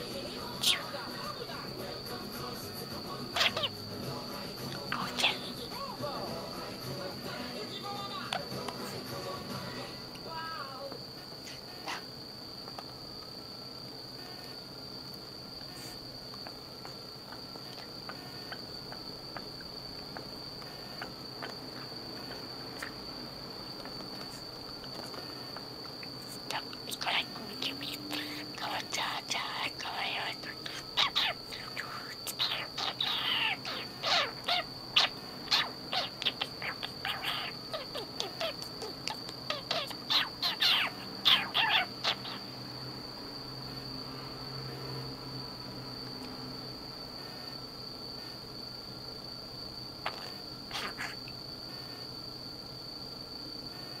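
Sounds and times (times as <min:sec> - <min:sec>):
budgerigar chattering: 0:03.4 - 0:03.8, 0:29.8 - 0:31.5, 0:32.3 - 0:42.5, 0:50.1 - 0:51.3.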